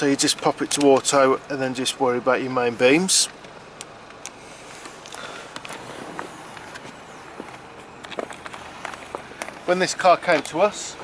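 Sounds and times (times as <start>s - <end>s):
handling clicks and rustles: 0.0s - 10.9s.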